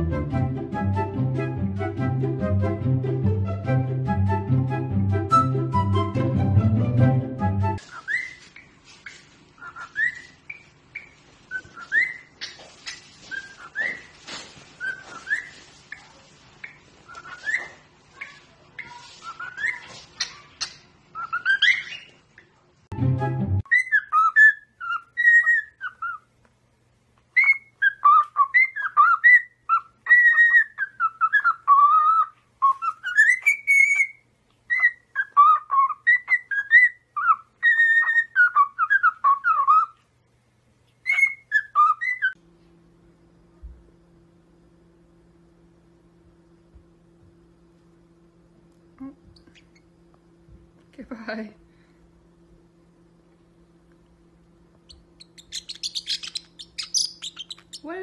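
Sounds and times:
cockatiel whistling: 7.8 - 8.7, 9.6 - 12.6, 13.3 - 14.1, 14.8 - 16.0, 16.6 - 18.3, 21.2 - 22.1, 23.6 - 26.3, 27.4 - 40.0, 41.0 - 42.4, 54.8 - 57.9
parrot chirping: 7.8 - 22.5, 23.6 - 26.3, 27.3 - 40.0, 40.9 - 42.4, 49.3 - 49.9, 54.8 - 58.0.

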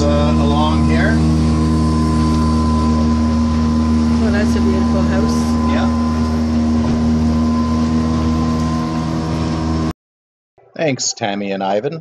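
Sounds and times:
outboard motor humming: 0.0 - 10.0.

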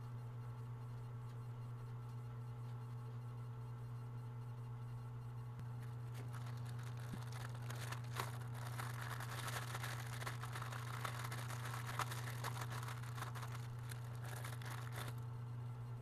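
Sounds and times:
steady low hum: 0.0 - 16.0
plastic packaging crinkling: 5.8 - 15.2.

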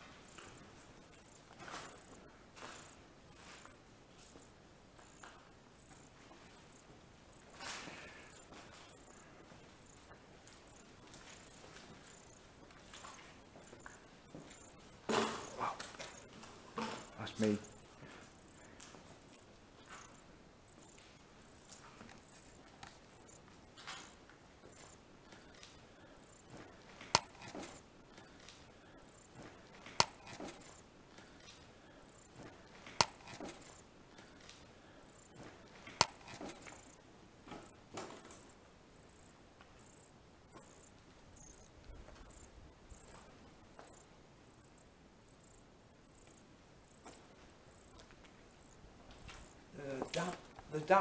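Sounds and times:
faint high-pitched hiss: 0.0 - 51.0
sharp clicks: 27.0 - 28.7, 29.8 - 31.6, 32.8 - 34.6, 35.8 - 36.8.

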